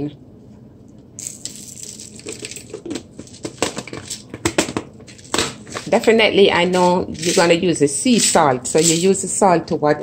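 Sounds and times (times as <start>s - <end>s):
salt crystals rattling in glass jar: 1.2s - 4.3s, 5.1s - 9.3s.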